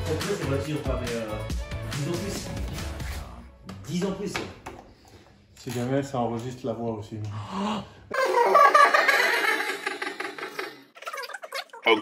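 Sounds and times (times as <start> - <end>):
laughter: 8.1 - 12.0
people talking: 11.8 - 12.0.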